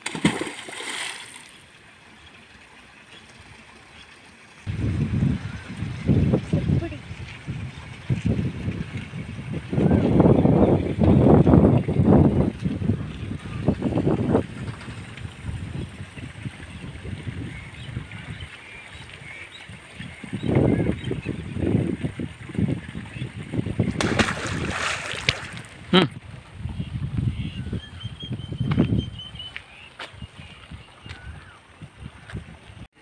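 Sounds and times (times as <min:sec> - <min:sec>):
wind buffeting microphone: 0:04.6 - 0:32.9.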